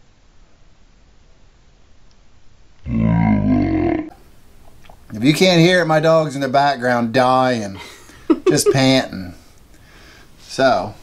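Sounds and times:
person grunting: 2.9 - 4.1.

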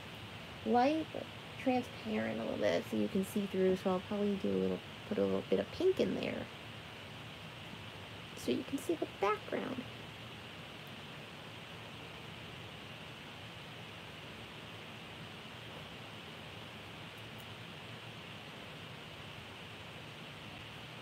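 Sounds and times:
faint microphone hiss: 0.0 - 21.0.

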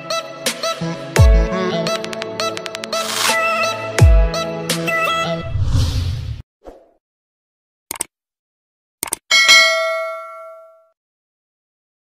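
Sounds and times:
notification bell ding: 9.3 - 10.9.

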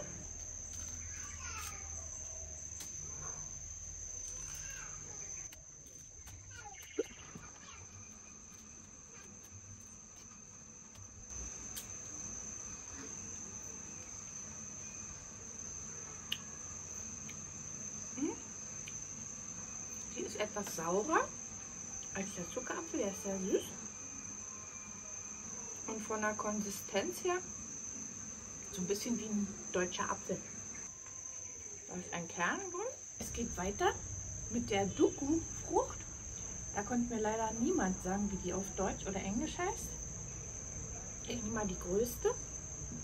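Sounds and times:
insects chirring: 0.0 - 43.0
fruit skin peeling clicks: 16.2 - 16.5.

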